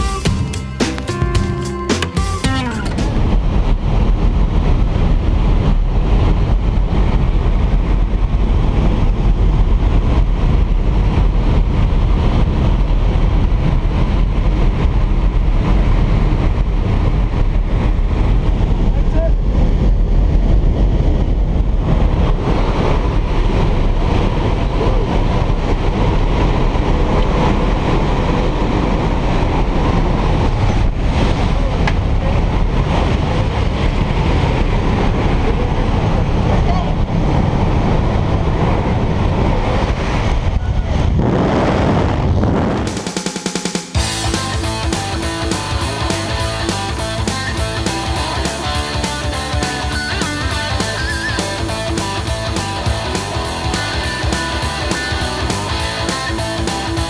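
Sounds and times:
aircraft engine and rushing air: 0.0 - 57.0.

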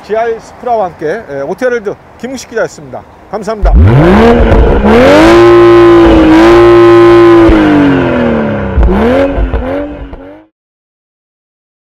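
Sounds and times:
car engine revving: 3.6 - 10.5.

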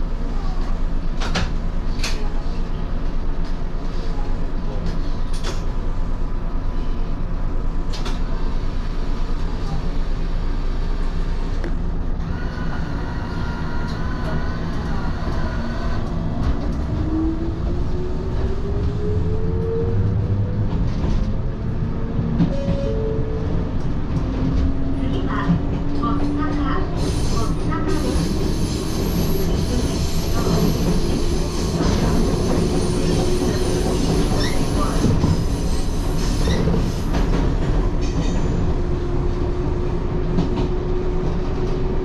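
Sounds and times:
train running rumble: 0.0 - 42.0.

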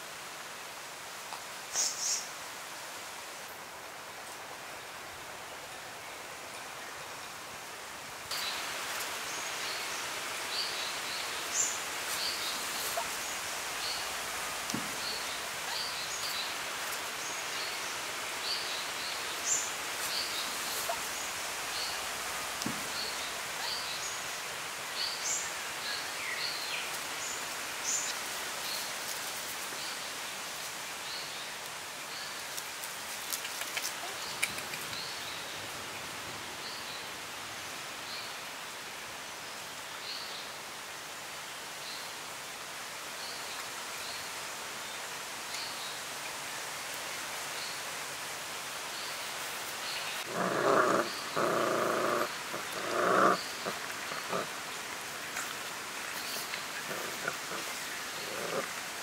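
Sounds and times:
steady outdoor hiss: 0.0 - 59.0
puppies calling: 50.2 - 58.8.

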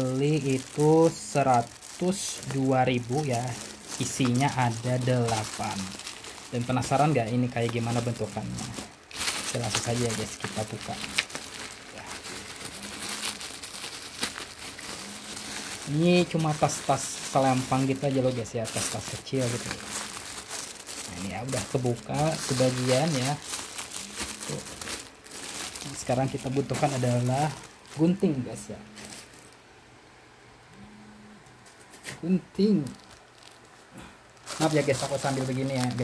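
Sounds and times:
plastic packaging crinkling: 0.0 - 29.6, 31.6 - 36.0
faint low hum: 0.0 - 36.0.

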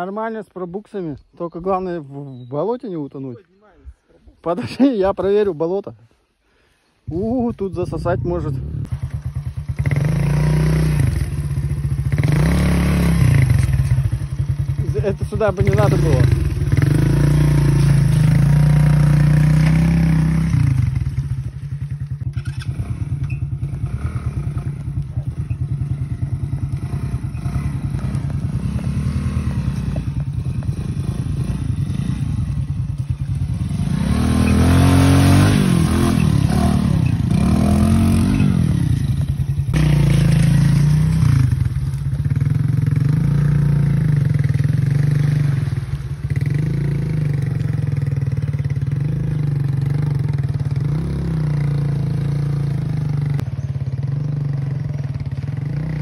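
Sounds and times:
motorcycle engine revving: 7.1 - 56.0.

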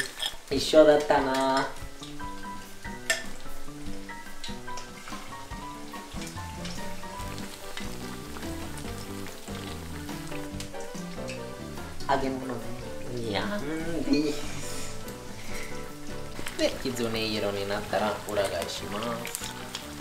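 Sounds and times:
fritters sizzling in hot oil: 0.0 - 20.0
oil crackles: 0.0 - 20.0
soft background music: 0.0 - 20.0.

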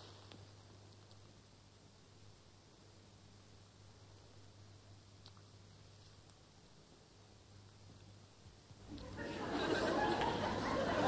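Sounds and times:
audience laughing and murmuring: 8.9 - 11.0.

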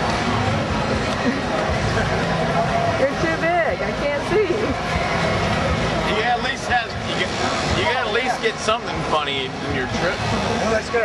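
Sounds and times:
voices talking and calling out: 0.2 - 11.0.

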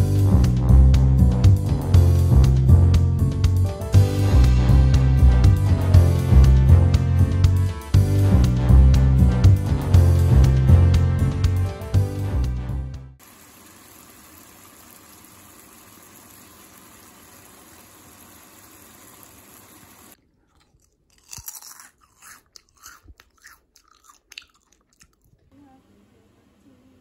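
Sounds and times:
food frying in oil: 13.2 - 20.2.

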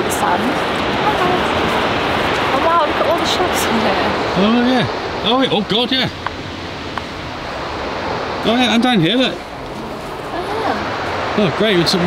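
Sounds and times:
surf rushing: 0.0 - 12.0.

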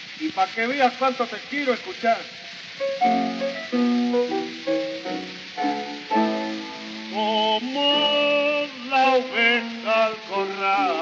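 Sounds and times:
piano: 2.3 - 11.0
person singing: 5.6 - 11.0.

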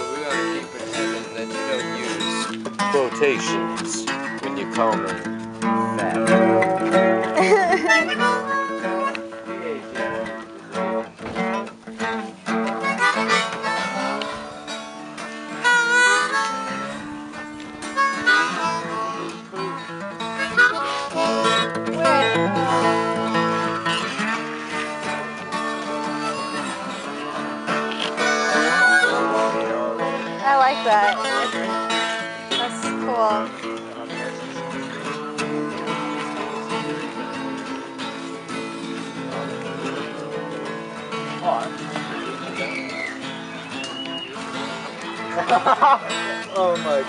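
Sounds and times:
acoustic guitar: 0.0 - 47.0
harmonica chords: 0.0 - 47.0.

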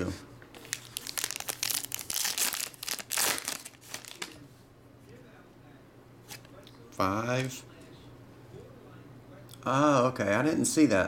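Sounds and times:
foil wrapper crinkling and tearing: 0.6 - 4.4.

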